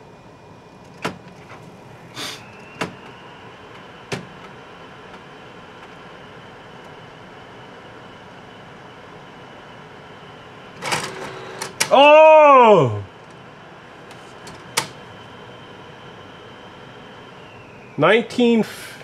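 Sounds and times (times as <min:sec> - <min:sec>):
faint high whine: 0:00.0 - 0:19.0
short hiss: 0:02.1 - 0:02.5
printer mechanical clicks: 0:10.8 - 0:12.0.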